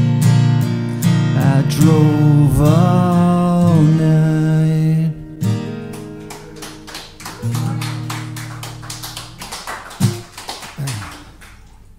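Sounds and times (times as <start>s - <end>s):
acoustic guitars strumming chords: 0.0s - 11.3s.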